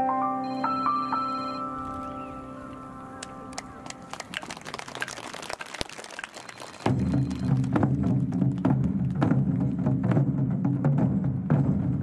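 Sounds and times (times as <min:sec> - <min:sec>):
electronic keyboard chord: 0:00.0 - 0:04.2
taiko drums: 0:06.8 - 0:12.0.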